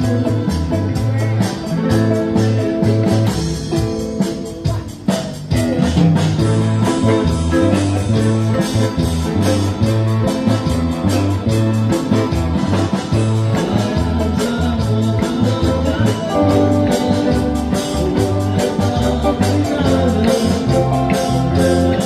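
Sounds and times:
live band playing pop: 0.0s - 22.0s.

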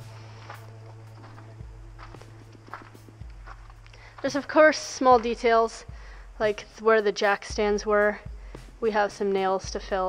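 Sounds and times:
footsteps: 0.0s - 5.9s
steady low hum: 0.0s - 10.0s.

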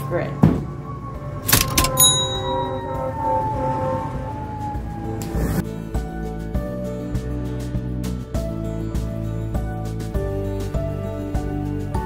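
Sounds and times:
background music with held notes: 0.0s - 12.0s
bell-like ding: 1.5s - 3.2s.

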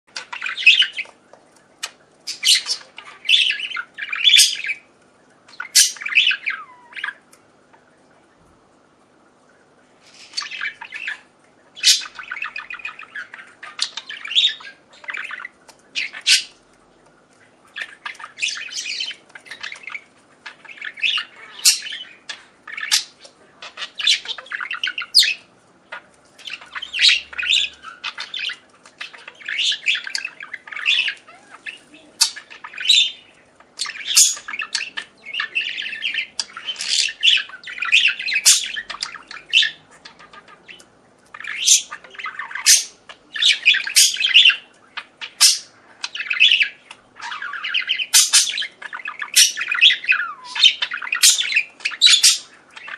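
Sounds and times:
budgerigars chirping and squawking: 0.1s - 8.0s, 10.0s - 52.9s.

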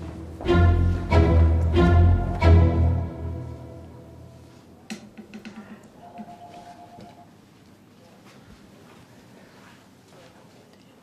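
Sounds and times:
orchestral music: 0.0s - 4.8s.

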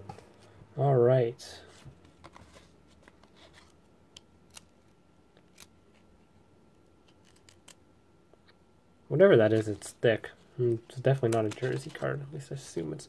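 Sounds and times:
trading cards clicking: 11.1s - 12.1s.

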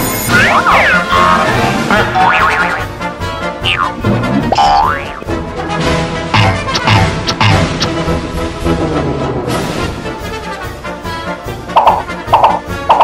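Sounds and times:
music: 0.0s - 13.0s
cartoon boings: 0.3s - 2.9s, 3.6s - 5.3s, 6.4s - 7.7s
sliding-pitch glides: 0.3s - 2.9s.

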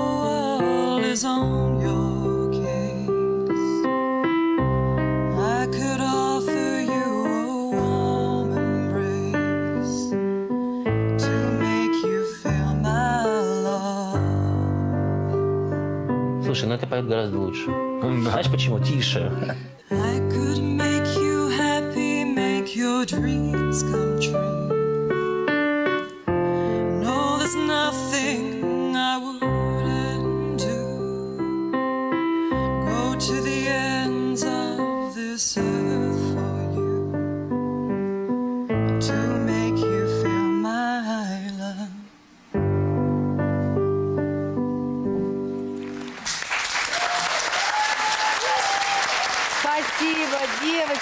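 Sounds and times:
digital keyboard piano chords: 0.0s - 40.6s, 42.5s - 46.2s.

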